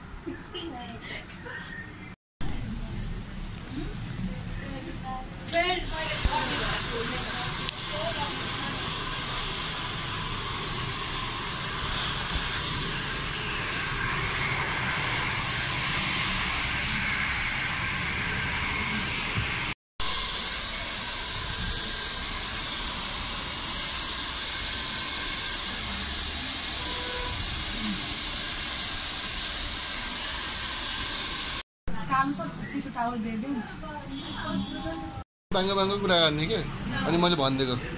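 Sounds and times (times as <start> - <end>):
hair dryer blowing: 5.7 - 31.6.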